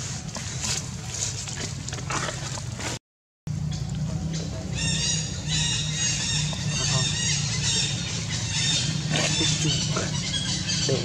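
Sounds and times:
macaque squealing: 4.8 - 11.0.

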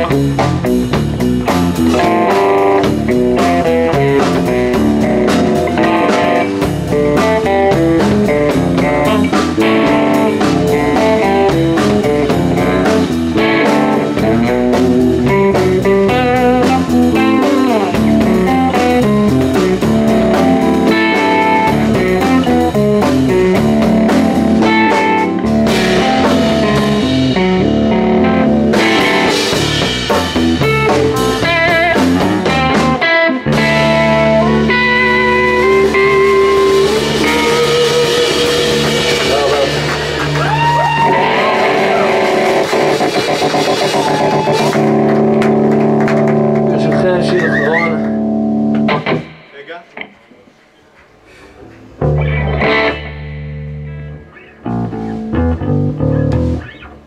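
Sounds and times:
electric bass: 0.0 - 49.5, 51.3 - 57.0
drum kit: 0.0 - 49.8, 51.4 - 57.0
electric guitar: 0.0 - 50.5, 51.6 - 57.0.

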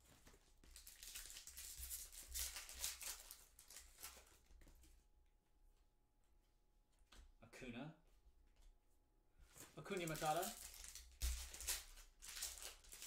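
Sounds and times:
foil wrapper crinkling and tearing: 0.7 - 4.3, 9.8 - 13.0.

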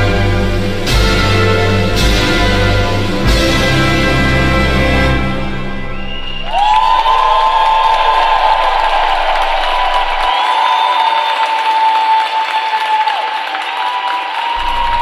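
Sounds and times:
audience applauding and cheering: 5.8 - 15.0.

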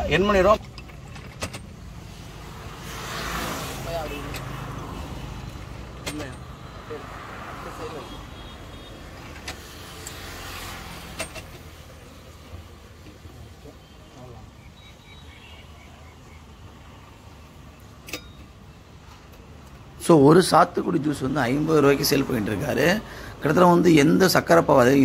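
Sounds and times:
road vehicles passing: 0.0 - 25.0.

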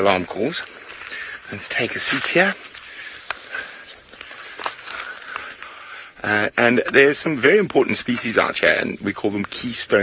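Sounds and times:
light rustling: 0.0 - 10.0.

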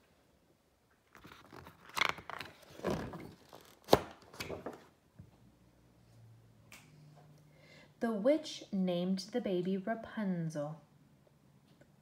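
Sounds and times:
paper rustling: 1.1 - 4.9.

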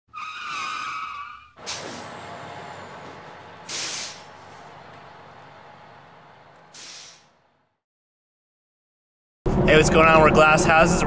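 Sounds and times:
brakes squealing: 0.1 - 7.5
air brake hiss: 1.6 - 2.2, 3.6 - 4.4, 6.7 - 7.4.

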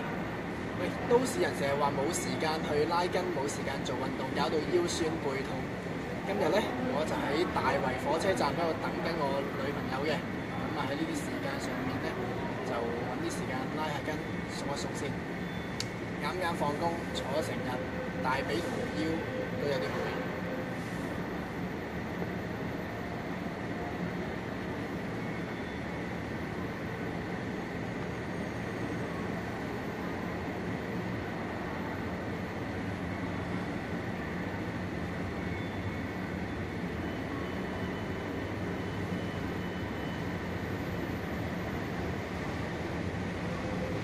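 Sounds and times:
railway station platform rumble: 0.0 - 44.0.

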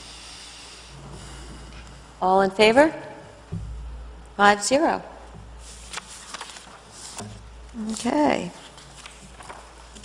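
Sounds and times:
low electrical hum: 0.0 - 10.0
person speaking: 2.2 - 3.3, 7.8 - 8.6.

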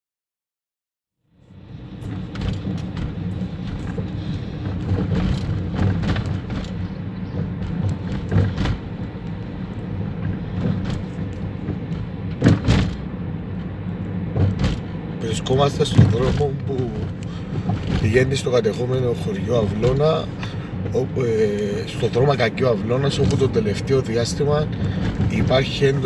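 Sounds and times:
car engine and road noise: 1.2 - 26.0
knocks and thumps: 2.0 - 13.2, 14.3 - 15.0, 15.8 - 18.3, 24.7 - 25.8.

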